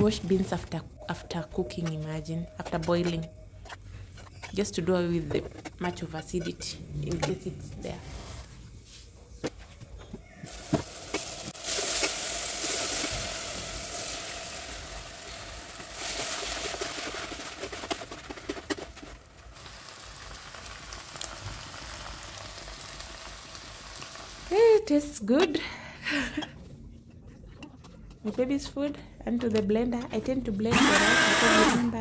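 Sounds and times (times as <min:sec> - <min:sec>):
beans sizzling in a pot: 0:10.4 - 0:24.8.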